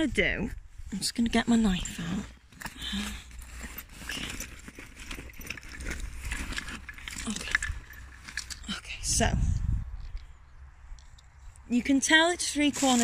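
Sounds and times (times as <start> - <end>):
low steady rumble: 0.0 - 12.7
rustling of handling: 0.9 - 9.1, 12.5 - 13.0.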